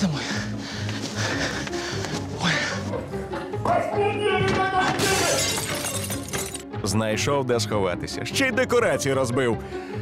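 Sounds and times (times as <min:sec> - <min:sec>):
scenery crashing and shattering: 0:04.9 - 0:06.6.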